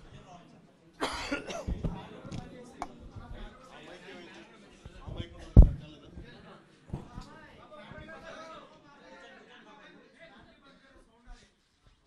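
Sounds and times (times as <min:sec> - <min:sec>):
man coughing: 0:01.0 - 0:01.8.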